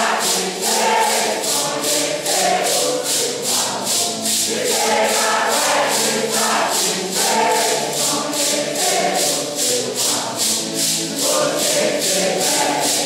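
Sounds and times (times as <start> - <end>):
choir singing a hymn: 0.0 - 13.0
maracas shaken on a beat: 0.0 - 13.0.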